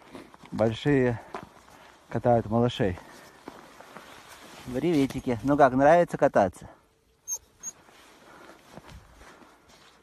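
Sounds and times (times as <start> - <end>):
soft footfalls in snow: 0.0 - 5.7, 7.8 - 10.0.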